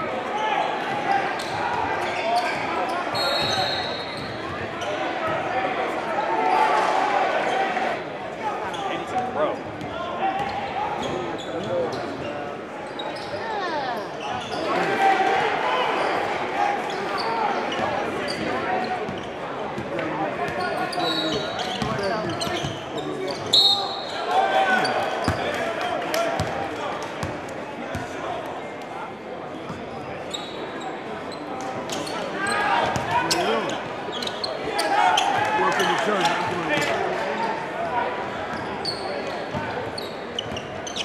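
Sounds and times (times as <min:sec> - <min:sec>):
crowd talking in echoing hall: 0:00.0 - 0:41.0
sneaker squeaks: 0:01.2 - 0:05.0, 0:08.7 - 0:14.8, 0:16.9 - 0:19.4, 0:20.4 - 0:25.6, 0:29.7 - 0:37.0, 0:38.5 - 0:41.0.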